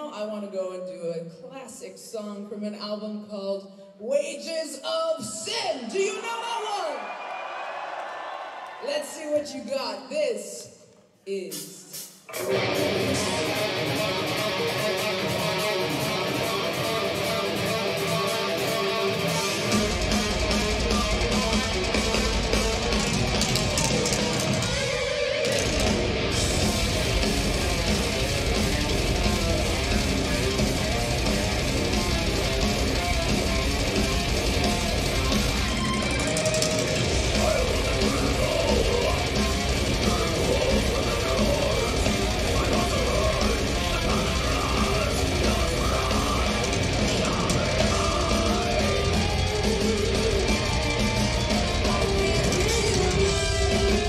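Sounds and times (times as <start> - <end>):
distorted electric guitar riff: 12.3 - 54.0
heavy metal band playing: 12.3 - 54.0.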